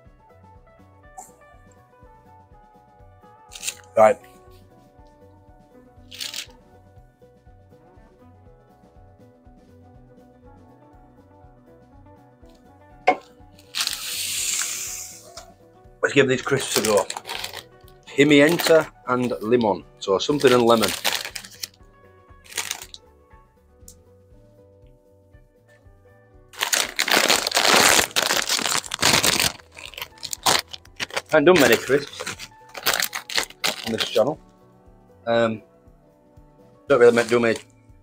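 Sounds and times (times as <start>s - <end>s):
background music: 0.0s - 38.0s
plastic crisp packet crinkling: 3.6s - 3.9s, 6.1s - 6.5s, 13.6s - 14.8s, 16.4s - 19.6s, 20.2s - 21.8s, 22.5s - 23.0s, 26.6s - 34.3s, 37.0s - 37.6s
hissing rush of noise: 14.0s - 15.3s.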